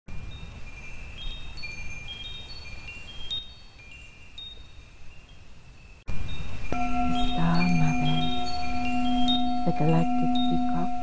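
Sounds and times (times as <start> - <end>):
wind chimes tinkling: 0.1 - 11.0.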